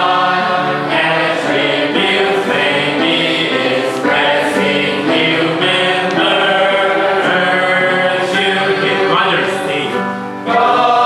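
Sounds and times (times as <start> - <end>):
group of voices singing: 0.0 - 11.0
man singing into microphone: 5.6 - 10.6.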